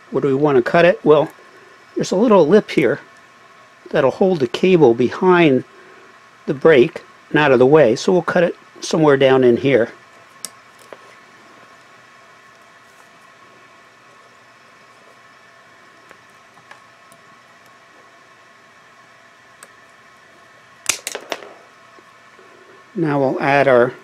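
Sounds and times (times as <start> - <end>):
faint steady hum: 0.0 - 24.0.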